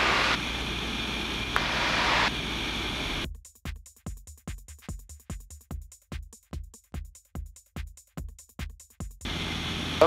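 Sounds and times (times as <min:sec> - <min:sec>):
light aircraft engine and wind: 0:00.0 - 0:03.2, 0:09.3 - 0:10.0
electronic music with steady beat: 0:03.2 - 0:09.2.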